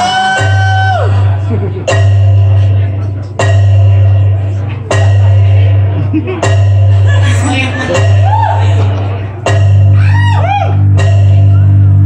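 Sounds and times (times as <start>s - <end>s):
deep steady bass note: 0.0s - 12.0s
ringing bell-like chords: 10.8s - 11.8s.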